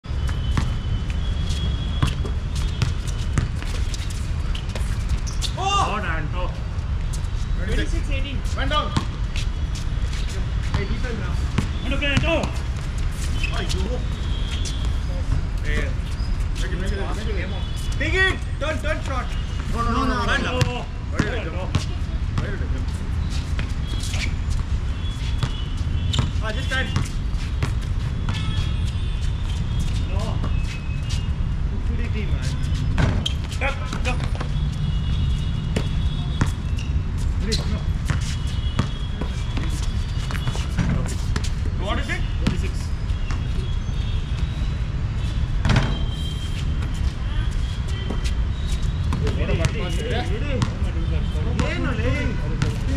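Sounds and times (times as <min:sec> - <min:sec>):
sneaker squeaks: 0:00.1 - 0:06.0, 0:07.0 - 0:52.9
basketball bouncing on hard court: 0:01.8 - 0:03.8, 0:25.4 - 0:28.6, 0:32.9 - 0:34.6, 0:35.7 - 0:36.6, 0:37.5 - 0:41.5, 0:45.6 - 0:46.2.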